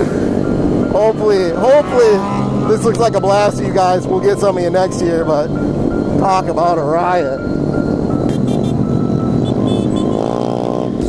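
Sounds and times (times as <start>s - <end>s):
motorcycle engine revving: 0.0s - 4.8s, 7.6s - 11.0s
background music: 0.0s - 11.0s
motorcycle engines running: 0.0s - 11.0s.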